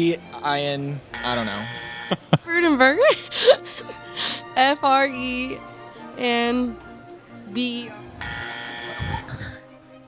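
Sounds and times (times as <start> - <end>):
background music: 0.0 - 10.0
comic buzzer: 1.1 - 2.2, 8.2 - 9.2.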